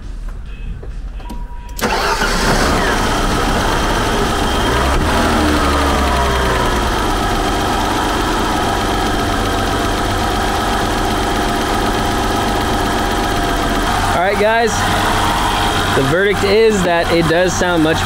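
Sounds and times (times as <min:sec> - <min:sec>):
car engine starting and idling: 0:01.2 - 0:18.0.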